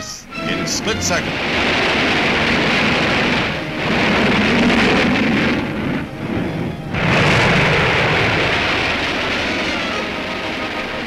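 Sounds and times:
rocket explosion roar: 0:00.5 - 0:11.0.

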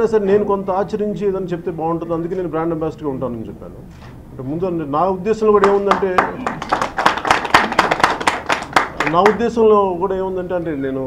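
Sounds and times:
person speaking: 0:00.0 - 0:06.6
people clapping: 0:05.5 - 0:09.5.

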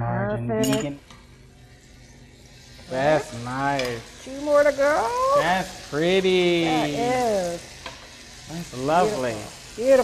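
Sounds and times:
bread sizzling in a skillet: 0:01.0 - 0:10.0.

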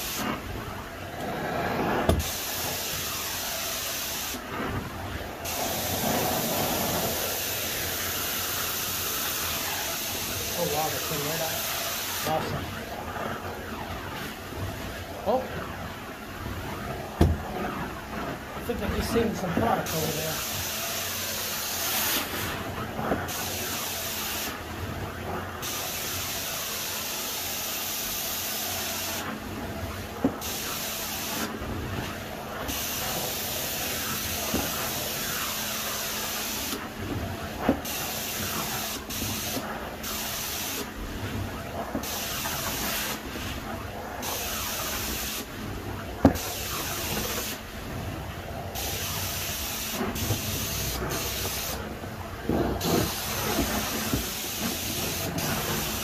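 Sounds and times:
carpet extraction wand hissing: 0:48.8 - 0:51.8, 0:52.8 - 0:56.0.

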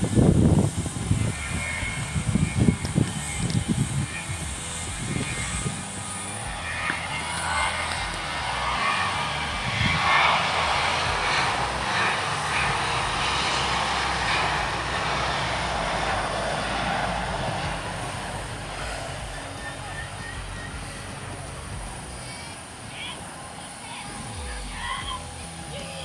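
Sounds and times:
jet engine roar: 0:00.0 - 0:26.0.

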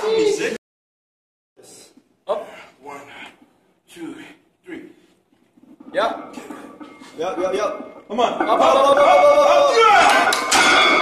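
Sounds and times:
man shouting: 0:08.7 - 0:10.3.

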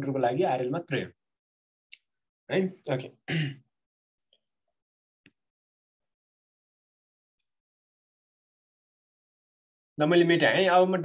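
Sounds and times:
man coughing: 0:03.3 - 0:03.6.

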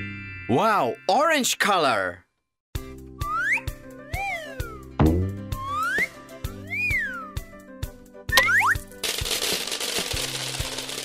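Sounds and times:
cartoon music with steady beat: 0:02.8 - 0:09.0
swooping boing-like glide: 0:05.0 - 0:05.9.

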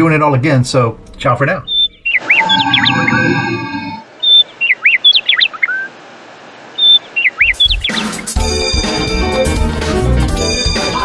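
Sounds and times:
bird chirps: 0:01.6 - 0:05.9, 0:06.7 - 0:08.4
music track: 0:08.3 - 0:11.0.

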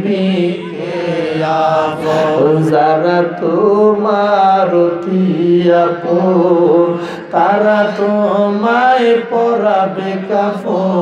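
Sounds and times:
man singing into microphone: 0:00.0 - 0:11.0.

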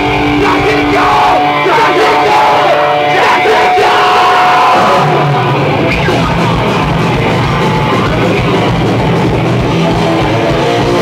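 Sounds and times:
bass line: 0:00.0 - 0:11.0
distorted electric guitars: 0:00.0 - 0:11.0
metal band playing: 0:00.0 - 0:11.0.

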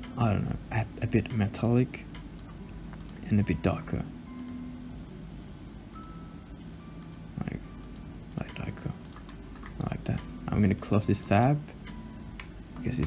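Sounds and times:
low background hum: 0:00.0 - 0:13.0
computer mouse clicks: 0:02.1 - 0:03.2, 0:07.8 - 0:10.9.

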